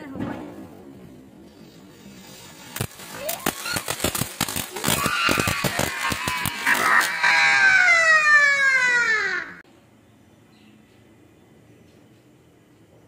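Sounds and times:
firework fountain crackling: 1.6 - 9.2
falling firework whistle: 2.2 - 9.5.

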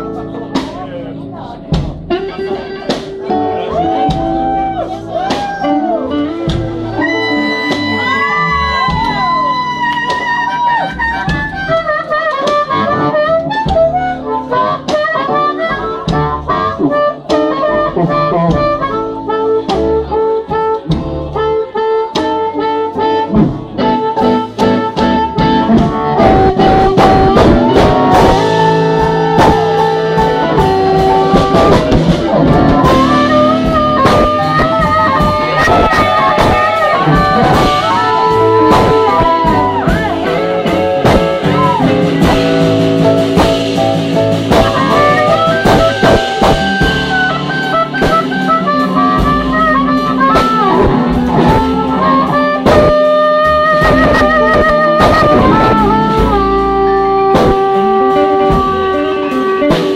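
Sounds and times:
drums: 0.0 - 59.9
electric guitar: 0.0 - 59.9
live blues band: 0.0 - 59.9
upright bass: 0.0 - 59.9
amplified harmonica: 2.0 - 59.9.

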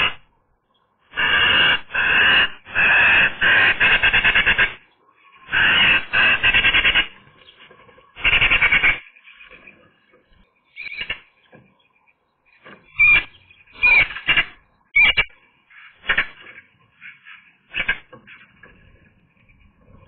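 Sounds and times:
magpie short sharp calls: 1.1 - 4.9, 5.5 - 7.2, 8.2 - 9.1, 10.8 - 11.3, 12.9 - 18.5
magpie chattering: 1.2 - 7.2, 8.2 - 9.4, 10.7 - 11.3, 12.9 - 18.5.

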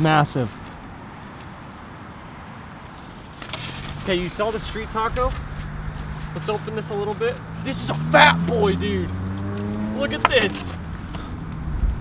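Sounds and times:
foam box rustling: 3.0 - 11.3.

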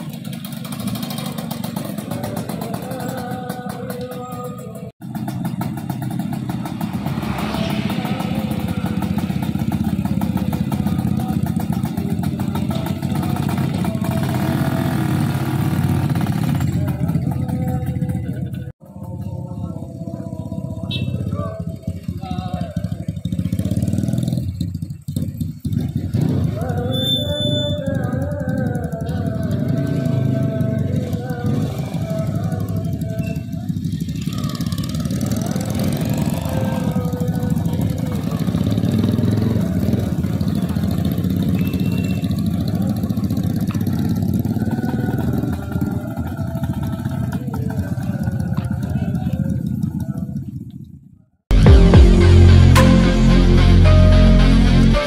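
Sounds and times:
motorcycle engines rumbling: 0.0 - 51.2
voices: 6.7 - 15.0, 16.5 - 24.0, 25.8 - 50.8.

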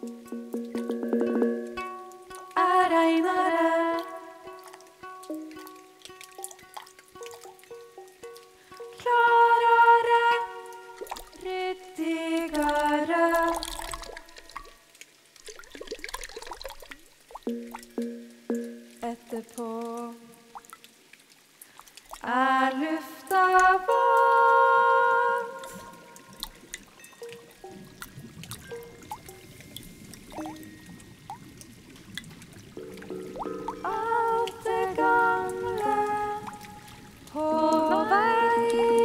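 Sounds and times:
soft plucked notes: 0.0 - 14.5, 17.3 - 20.3, 22.5 - 39.0.

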